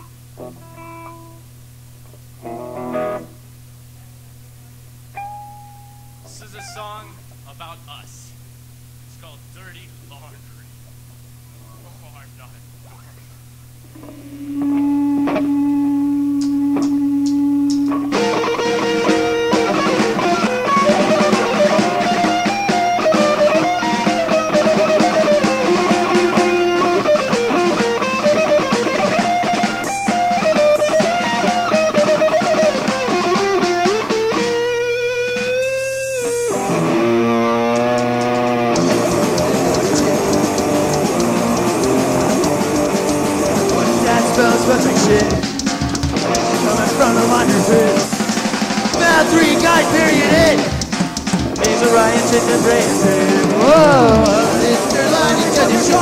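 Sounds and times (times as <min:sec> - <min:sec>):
electric guitar picked notes: 0:05.1 - 0:07.4, 0:13.8 - 0:56.0
live rock band playing: 0:13.9 - 0:56.0.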